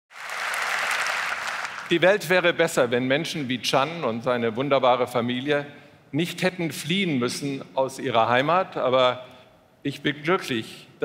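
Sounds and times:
audience applauding: 0:00.1 - 0:02.0
man speaking: 0:01.9 - 0:11.0.

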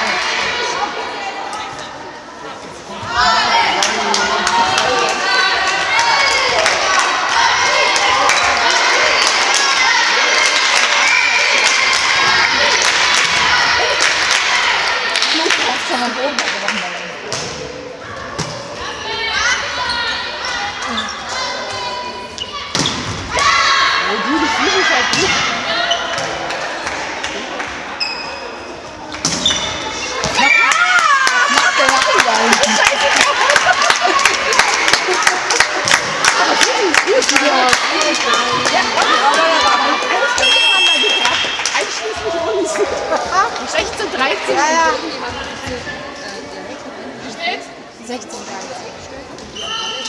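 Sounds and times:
players calling and shouting: 0:00.0 - 0:47.9.

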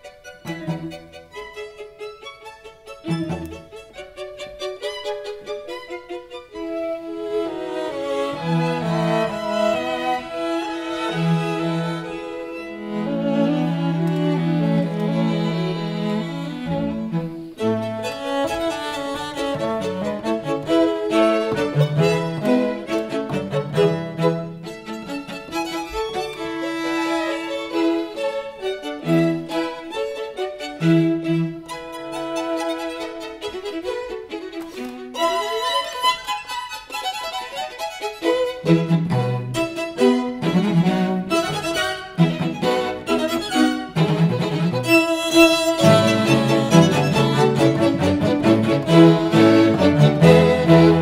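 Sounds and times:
string ensemble playing: 0:00.0 - 0:51.0.

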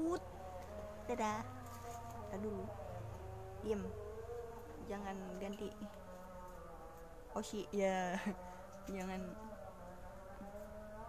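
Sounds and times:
woman humming: 0:00.0 - 0:09.6.

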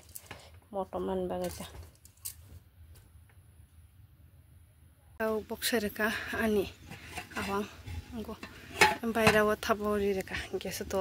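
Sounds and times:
pot lid clinking: 0:07.0 - 0:09.5.

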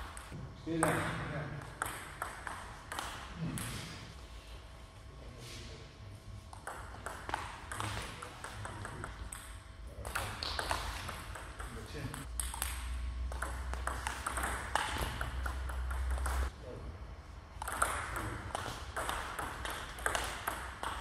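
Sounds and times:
ping pong ball hitting paddles: 0:00.0 - 0:04.0, 0:06.5 - 0:16.5, 0:17.6 - 0:21.0
ball bouncing on table: 0:00.1 - 0:04.0, 0:06.5 - 0:16.5, 0:17.6 - 0:21.0.

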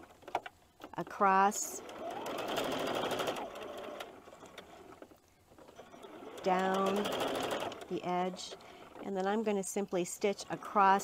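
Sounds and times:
sewing machine stitching: 0:01.0 - 0:11.0.

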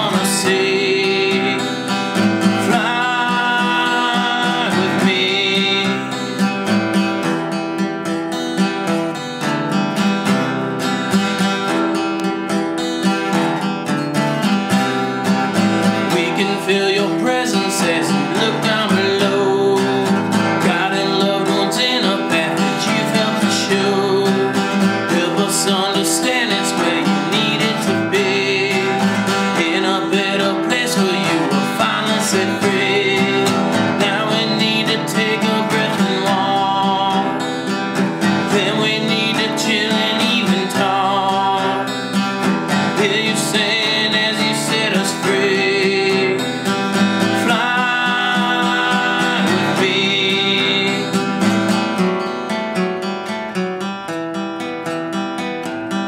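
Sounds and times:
man singing: 0:00.0 - 0:07.3, 0:15.5 - 0:52.0
acoustic guitar strumming: 0:00.0 - 0:56.0.

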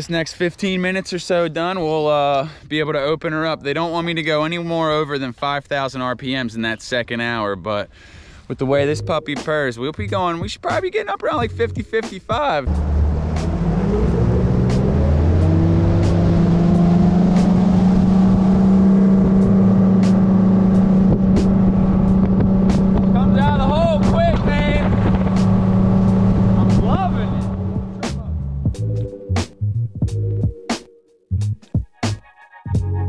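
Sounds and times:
music: 0:08.7 - 0:15.4, 0:20.0 - 0:20.2, 0:21.2 - 0:33.0
outboard motor running: 0:12.7 - 0:28.1.

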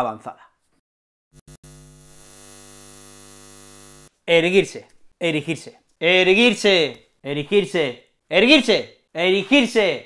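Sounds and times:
neon sign electrical buzzing: 0:01.3 - 0:04.2.

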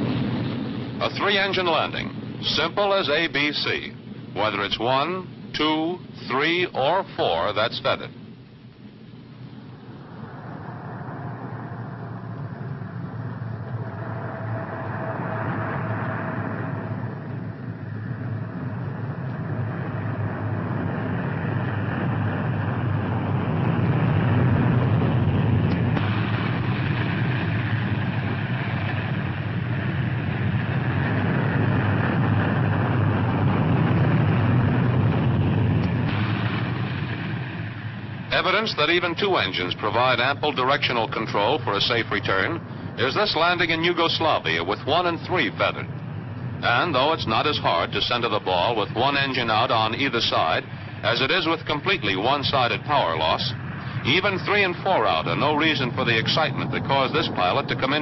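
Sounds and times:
propeller aircraft engines droning: 0:00.0 - 0:58.0.

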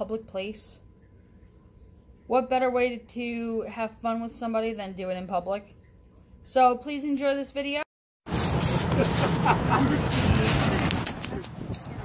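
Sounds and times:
rough rumble on microphone: 0:08.3 - 0:12.0
traffic noise: 0:08.3 - 0:12.0.

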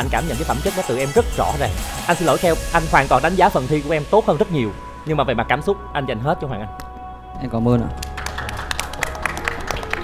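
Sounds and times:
background music sustained tones: 0:00.0 - 0:10.0
applause: 0:07.9 - 0:10.0.

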